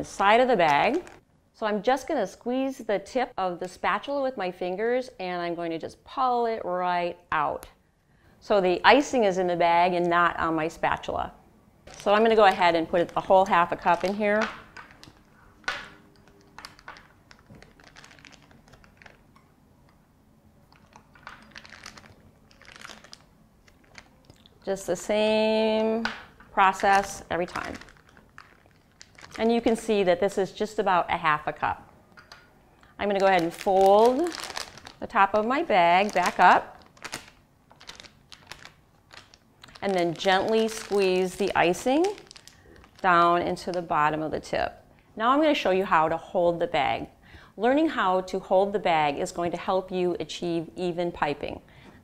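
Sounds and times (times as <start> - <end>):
plastic bag crinkling: 0.5 - 1.2, 11.8 - 19.5, 20.7 - 30.4, 32.8 - 44.1.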